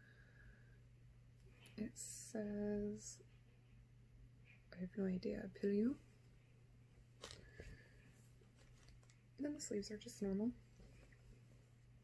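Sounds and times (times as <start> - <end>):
fabric rustling: 7.0 - 9.4, 10.6 - 12.0.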